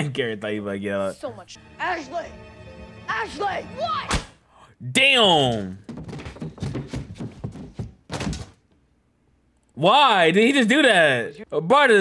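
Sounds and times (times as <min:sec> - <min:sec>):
heavy thuds and knocks: 0:05.8 - 0:08.6.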